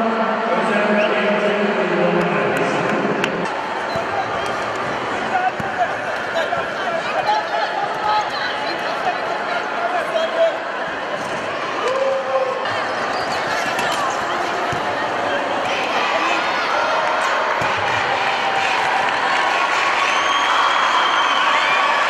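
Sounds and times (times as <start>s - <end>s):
crowd shouting and cheering: 0.0s - 22.0s
ball bouncing on court: 5.4s - 5.9s, 12.7s - 15.8s, 17.6s - 18.0s.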